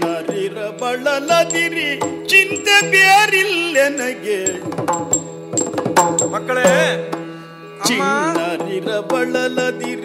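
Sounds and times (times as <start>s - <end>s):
man singing ornamented melody: 0.0s - 5.3s, 6.2s - 7.2s, 7.8s - 10.0s
drum strokes: 0.0s - 7.2s.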